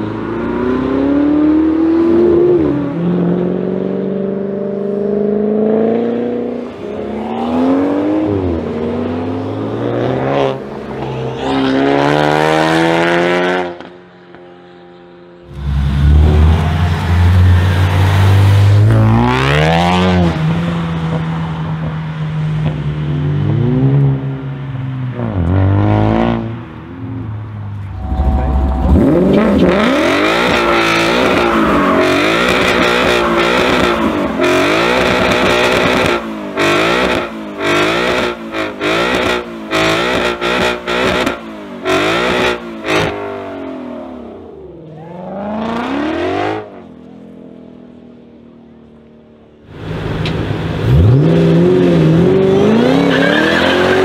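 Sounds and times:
car engine revving: 15.4 - 21.6, 27.6 - 46.9, 49.6 - 54.0
car engine accelerating away: 27.7 - 46.8.

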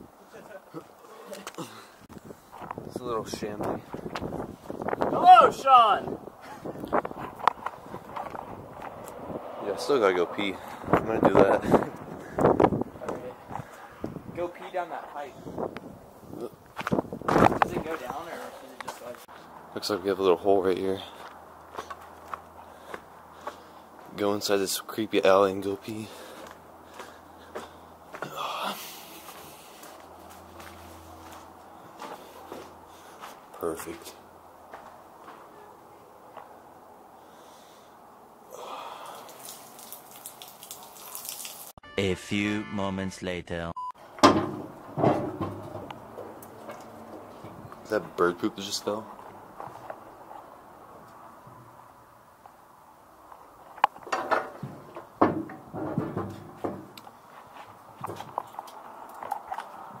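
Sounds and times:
footsteps on gritty concrete: 6.9 - 9.2, 16.6 - 19.5, 21.0 - 24.2, 26.1 - 28.4, 29.0 - 35.5, 49.0 - 50.5, 56.8 - 60.0
metal bucket clanking and rattling: 54.1 - 57.0.

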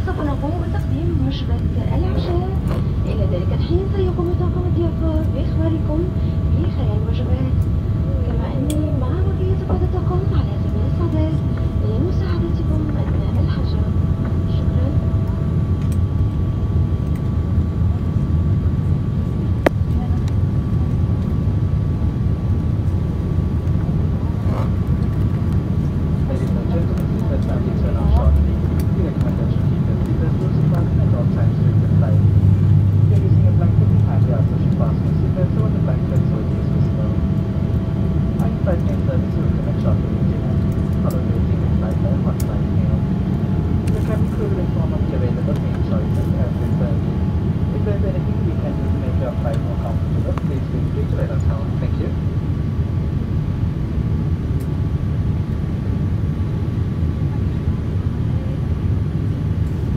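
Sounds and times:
jet engine and airflow roar: 0.0 - 59.9.

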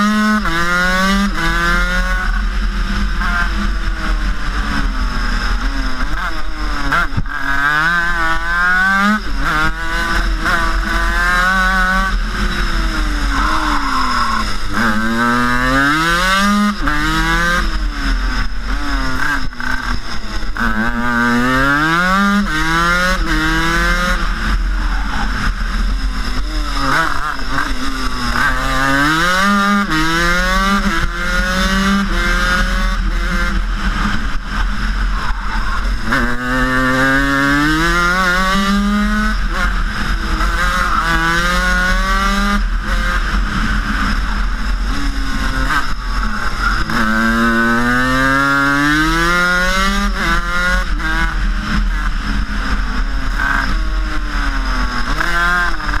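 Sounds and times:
two-stroke kart engine revving: 0.0 - 56.0.

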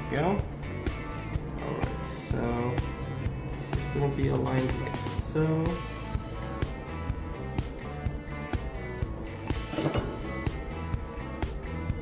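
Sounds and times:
background music with steady beat: 0.0 - 12.0.

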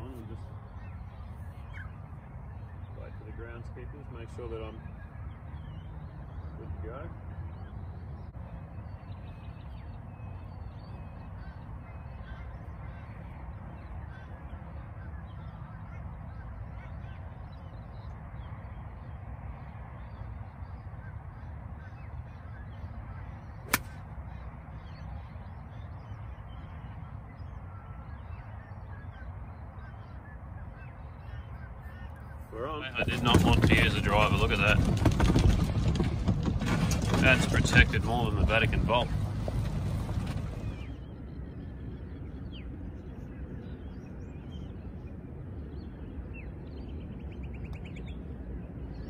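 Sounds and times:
faint bird calls: 0.0 - 35.6
golf club striking ball: 23.7 - 24.0.

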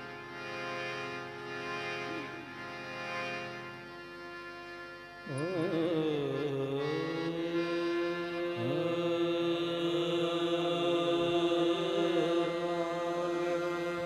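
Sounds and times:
harmonium chords: 0.0 - 14.0.

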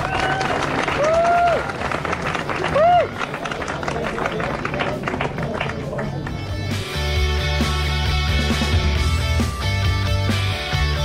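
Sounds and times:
crowd clapping: 0.0 - 6.8.

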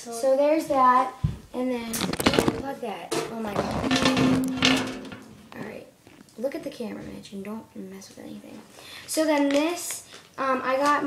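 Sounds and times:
camera bumps and rubbing: 2.0 - 5.6.

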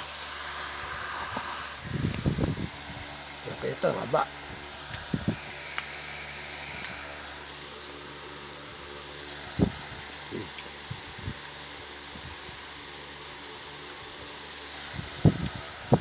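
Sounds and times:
low motor hum: 0.0 - 16.0.

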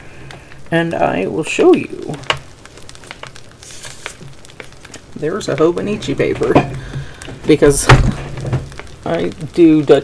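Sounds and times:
paper rustling: 2.7 - 9.1.

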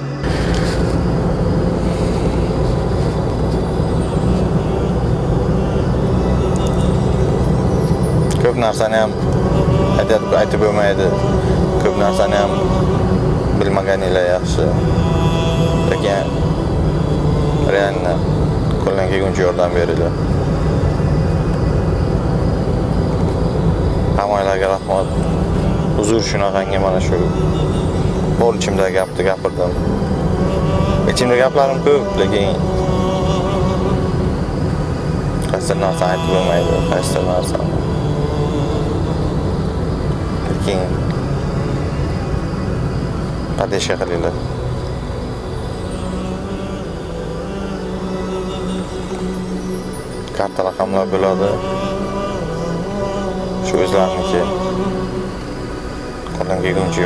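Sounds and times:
background music: 0.0 - 57.0
car engine and road rumble: 0.0 - 57.0
man speaking: 8.3 - 13.0, 17.6 - 20.2, 24.2 - 27.6, 28.4 - 29.8, 35.4 - 37.8, 40.5 - 41.0, 43.6 - 44.4, 56.4 - 57.0.

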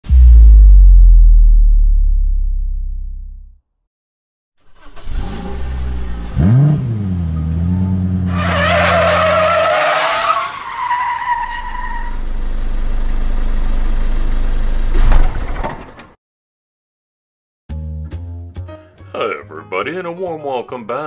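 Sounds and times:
sharp hit: 0.0 - 3.4
car engine revving: 4.8 - 9.6.

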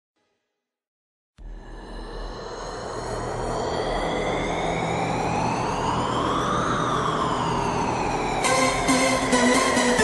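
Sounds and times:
rising synthesizer tone: 1.4 - 10.0.

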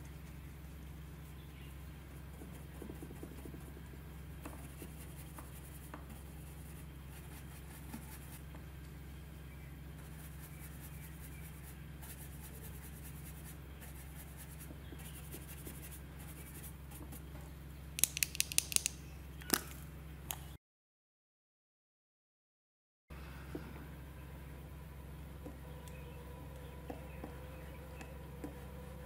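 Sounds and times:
steady low hum: 0.0 - 20.6, 23.1 - 29.0
makeup brush scratching paper: 4.5 - 8.4, 10.0 - 17.3
plastic tube clicking: 18.0 - 19.8.

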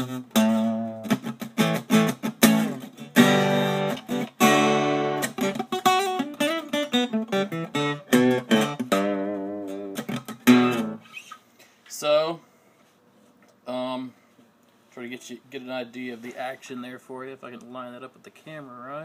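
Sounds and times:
acoustic guitar playing: 0.0 - 11.5.

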